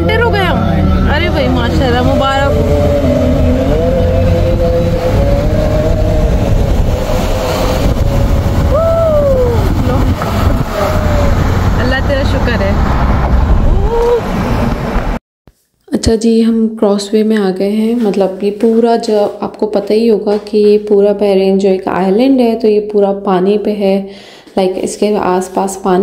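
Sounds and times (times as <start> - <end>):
person singing long notes: 0.0 - 11.6
car driving hum: 0.0 - 15.2.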